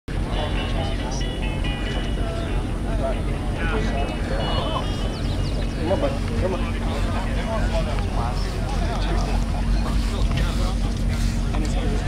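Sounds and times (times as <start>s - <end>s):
faint music: 0.1s - 12.0s
low rumble: 0.1s - 12.0s
people talking: 0.1s - 12.0s.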